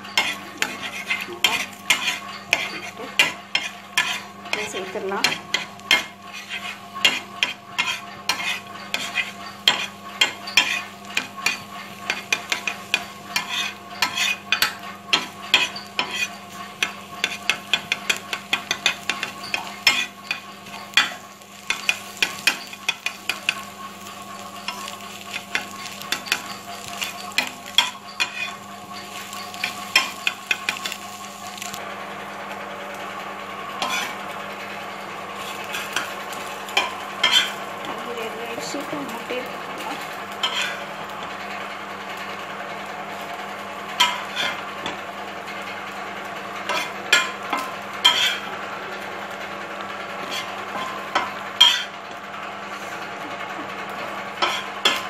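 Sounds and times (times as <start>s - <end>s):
spatula scraping on a griddle: 0.0s - 31.9s, 33.6s - 55.0s
noodles sizzling in a pan: 0.0s - 55.0s.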